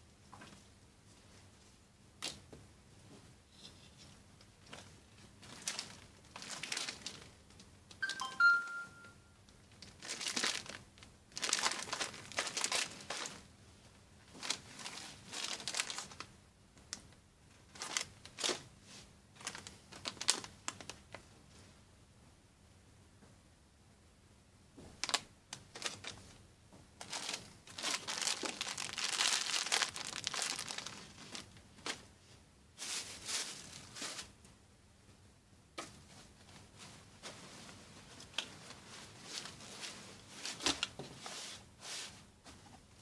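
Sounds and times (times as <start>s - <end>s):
plastic bags crinkling: 5.4s - 7.4s, 9.8s - 13.4s, 14.3s - 16.3s, 17.7s - 18.6s, 19.4s - 21.0s, 25.0s - 26.2s, 27.0s - 32.0s
high tonal chirp: 8.0s - 9.2s.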